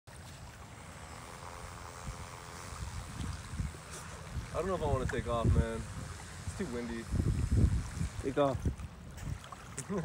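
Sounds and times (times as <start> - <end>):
model plane motor buzzing: 0.2 - 8.8
wind rumbling on microphone: 1.1 - 9.8.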